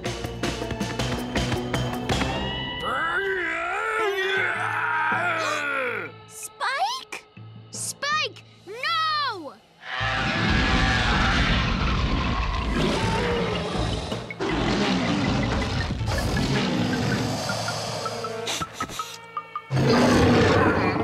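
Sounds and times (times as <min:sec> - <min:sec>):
dramatic cartoon score: 0:01.4 - 0:21.0.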